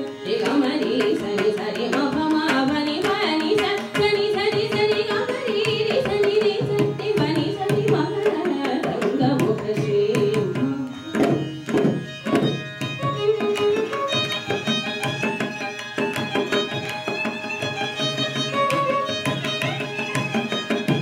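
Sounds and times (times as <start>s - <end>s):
violin playing melodic phrases: 0.0s - 21.0s.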